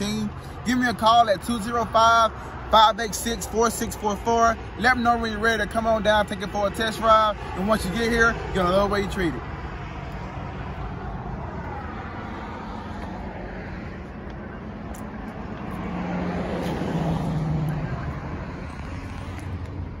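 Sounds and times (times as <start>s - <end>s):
road traffic noise: 0.0s - 20.0s
vehicle passing: 0.0s - 20.0s.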